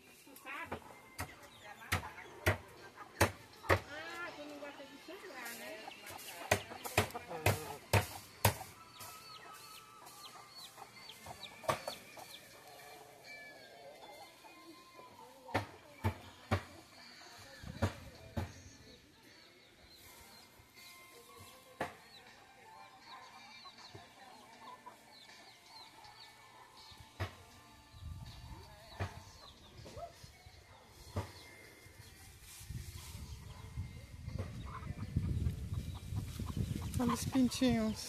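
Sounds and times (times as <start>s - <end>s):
hens clucking: 0.2s - 15.5s, 34.3s - 38.0s
chicks cheeping: 5.4s - 14.5s, 27.9s - 38.0s.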